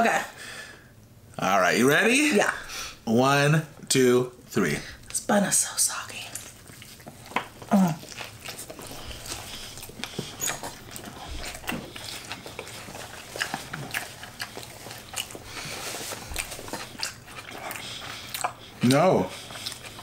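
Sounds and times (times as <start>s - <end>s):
people chewing wetly: 6.1s - 20.0s
closed-mouth hums: 7.4s - 12.7s
wet lip smacks: 16.2s - 20.0s.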